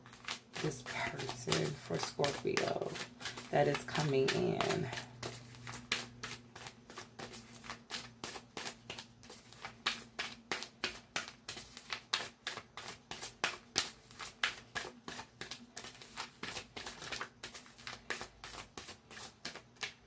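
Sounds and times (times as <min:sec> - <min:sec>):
cards being shuffled: 0:00.0 - 0:20.0.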